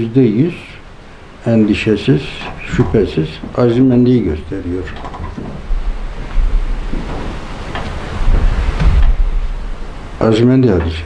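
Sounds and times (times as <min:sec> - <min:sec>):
wind rumbling on microphone: 0:02.4 - 0:10.0.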